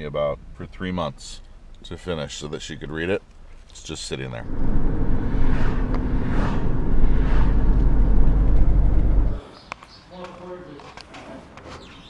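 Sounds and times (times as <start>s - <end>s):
car engine and road drone: 4.4s - 9.4s.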